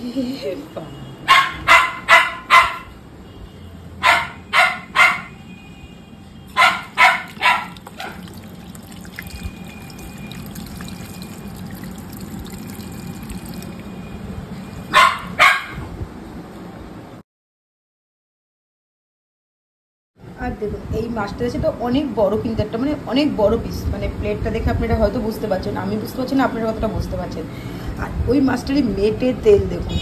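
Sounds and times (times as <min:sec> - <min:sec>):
dog barking: 0:01.3 - 0:03.0, 0:04.0 - 0:05.4, 0:06.5 - 0:08.3, 0:14.9 - 0:15.9.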